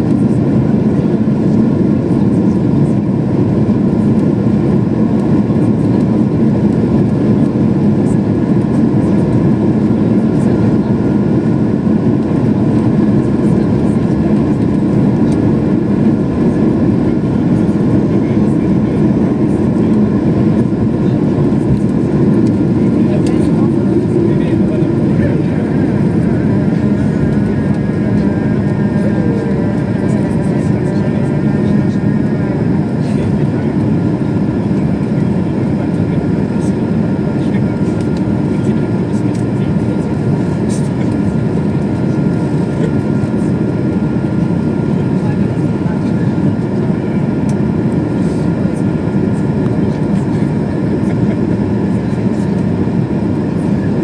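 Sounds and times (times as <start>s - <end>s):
jet engines at takeoff in cabin: 0.0s - 54.0s.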